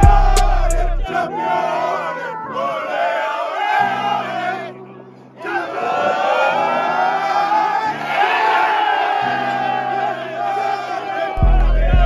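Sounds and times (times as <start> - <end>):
men shouting and chanting: 0.0 - 12.0.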